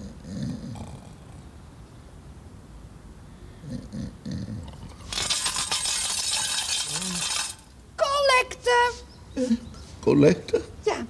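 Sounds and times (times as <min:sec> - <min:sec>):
coins rattling in metal tin: 0:05.0 - 0:07.7.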